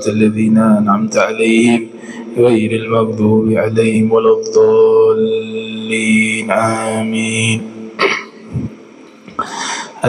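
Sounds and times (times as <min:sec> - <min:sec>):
man breathing into microphone: 0:02.0 - 0:02.4, 0:09.4 - 0:10.0.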